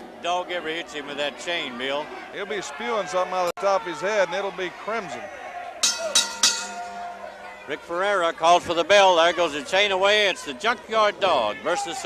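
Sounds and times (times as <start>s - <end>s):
ring bell strikes: 5.8s - 7.0s.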